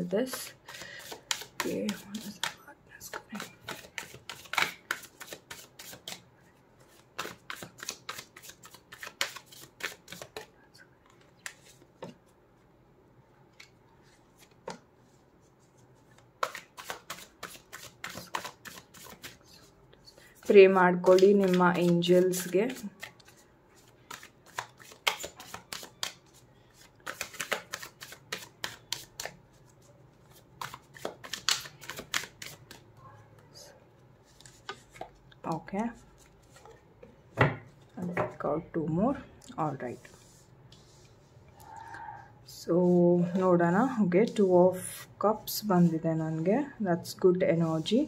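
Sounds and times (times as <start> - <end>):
cards being shuffled: 0.7 - 6.2, 6.8 - 12.2, 15.7 - 19.5, 20.4 - 29.6, 30.3 - 32.8.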